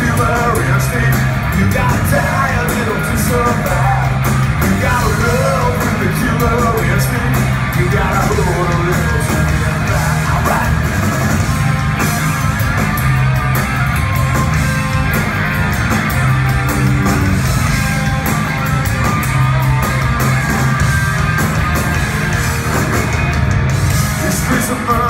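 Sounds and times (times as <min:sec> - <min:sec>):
bass guitar: 0:00.0 - 0:25.0
drum kit with cymbal hits: 0:00.0 - 0:25.0
electric guitars: 0:00.0 - 0:25.0.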